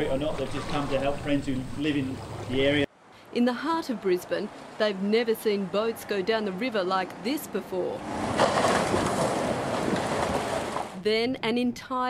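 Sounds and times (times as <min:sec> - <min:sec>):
floodwater rushing: 0:00.0 - 0:02.9, 0:03.7 - 0:07.0, 0:07.8 - 0:11.0.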